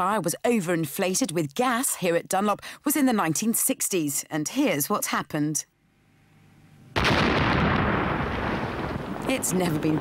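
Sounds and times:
tyre bursting explosion: 7.0s - 9.3s.

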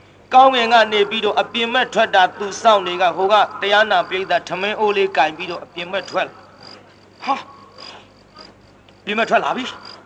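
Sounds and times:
man's voice syllable: 0.3s - 6.4s.

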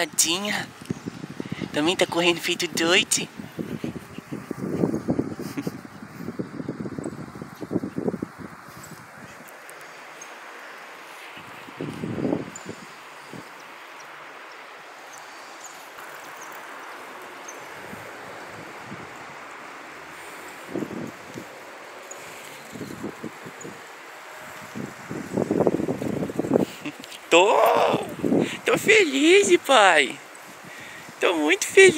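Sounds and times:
outdoor background hiss: 0.0s - 31.9s.

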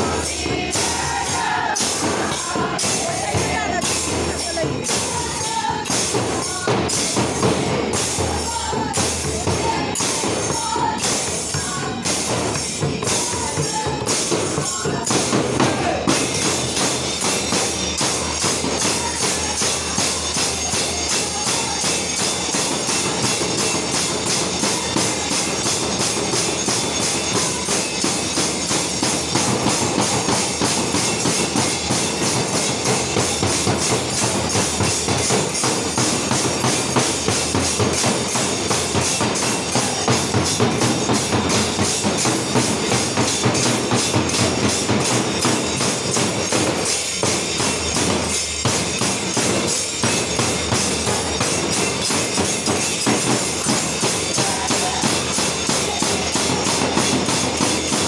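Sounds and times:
brass cymbal clashes: 0.0s - 58.0s
hand drum beats: 0.0s - 58.0s.

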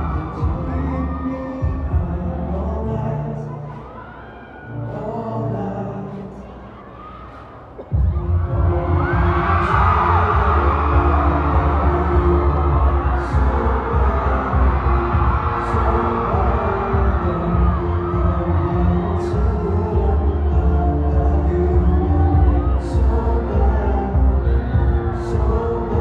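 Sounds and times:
loud concert music with bass beat: 0.0s - 6.6s, 7.5s - 26.0s
audience screaming and cheering: 0.0s - 26.0s.

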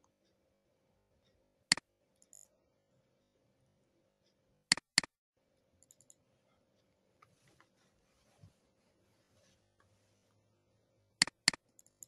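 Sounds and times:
computer mouse clicks: 4.7s - 5.1s, 11.2s - 12.0s.

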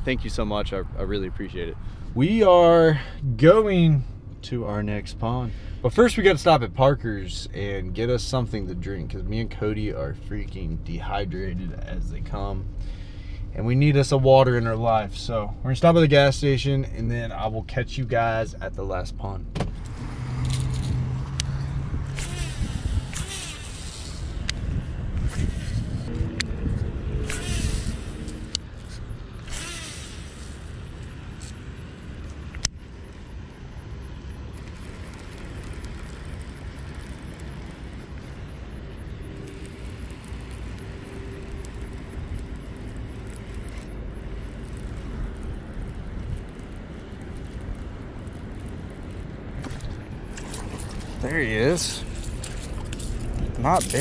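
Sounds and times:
steady low rumble: 0.0s - 54.0s
fishing reel clicks and rustles: 19.8s - 54.0s.

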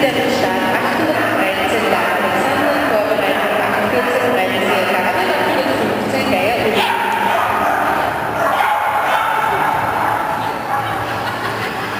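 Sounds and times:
hall background noise: 0.0s - 11.9s
voices in a large hall: 0.0s - 11.9s
dog barking: 4.0s - 5.2s, 6.8s - 11.2s.

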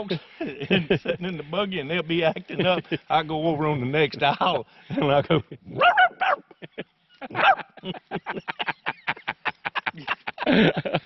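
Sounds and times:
man laughing: 0.0s - 1.3s, 2.3s - 3.1s, 4.9s - 5.8s, 6.4s - 11.0s
man imitating dog bark: 5.8s - 6.4s, 7.4s - 7.7s.

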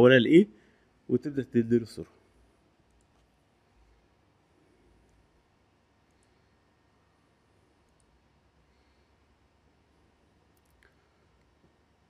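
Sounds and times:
faint room hiss: 0.0s - 12.0s
computer mouse click: 7.8s - 8.1s.

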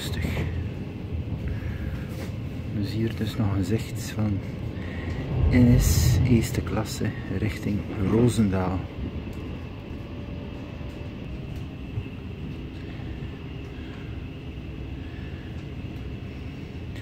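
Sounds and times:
train wheels rumbling on rails: 0.0s - 17.0s.

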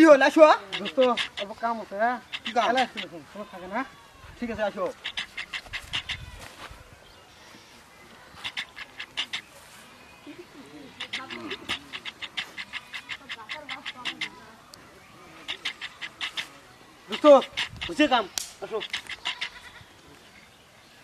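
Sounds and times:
dog-like panting: 0.6s - 1.6s, 2.2s - 3.1s, 4.9s - 6.4s, 8.4s - 9.6s, 10.9s - 14.5s, 15.4s - 18.1s.

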